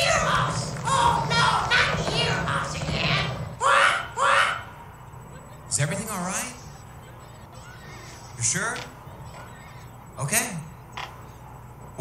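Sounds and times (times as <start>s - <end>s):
children shouting: 0.0s - 4.9s.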